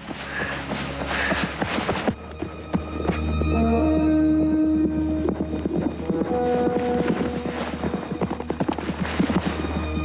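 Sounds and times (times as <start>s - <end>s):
horse hooves galloping: 0.0s - 10.0s
low sustained music: 0.0s - 10.0s.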